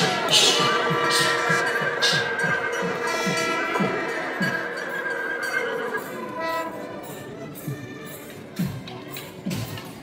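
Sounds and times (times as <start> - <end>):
wind instrument long notes: 0.0 - 8.4.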